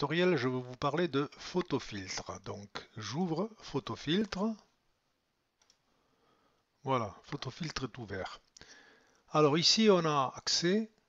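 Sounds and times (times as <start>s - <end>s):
faint mouse click: 5.6s - 5.8s.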